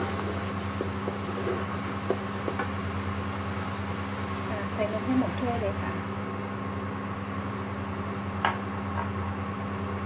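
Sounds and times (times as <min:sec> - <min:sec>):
cooking hum with faint hiss: 0:00.0 - 0:10.0.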